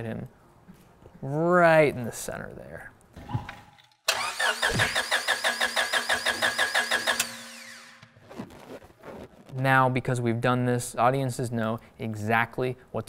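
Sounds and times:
starter motor cranking engine: 4.1s - 8.1s.

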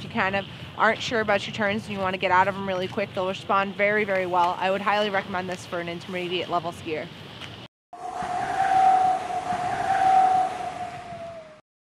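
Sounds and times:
rushing whoosh: 8.0s - 11.6s
steady held tone: 8.0s - 11.6s.

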